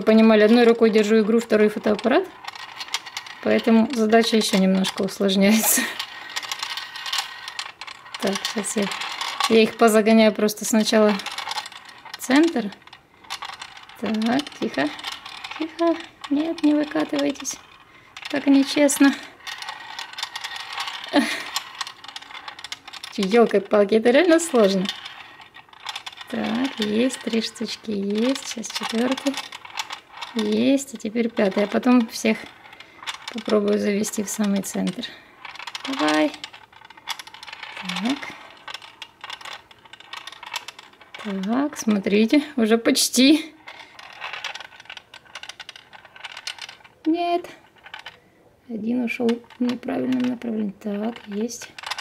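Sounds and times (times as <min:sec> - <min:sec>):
metal balls rattling in plastic puzzle: 0:00.0 - 0:52.0.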